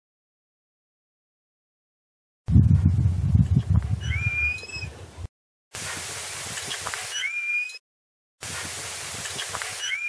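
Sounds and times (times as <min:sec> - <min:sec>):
low muffled rumbling: 0:02.5 - 0:04.1.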